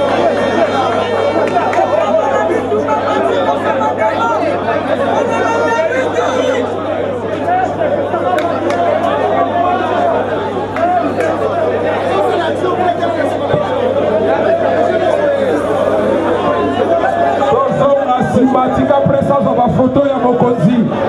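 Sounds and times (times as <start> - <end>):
crowd chatter: 0.0 - 21.0.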